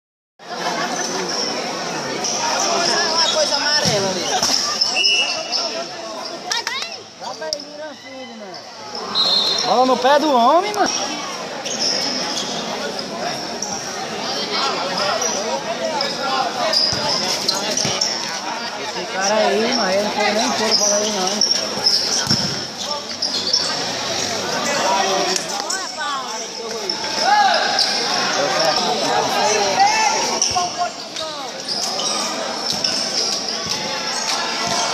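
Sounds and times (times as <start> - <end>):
voices talking and calling: 0.5 - 34.9
shoe squeaks on court: 11.6 - 13.1, 16.0 - 18.3, 20.4 - 24.2, 30.2 - 34.9
ball struck with a thud: 22.2 - 22.6.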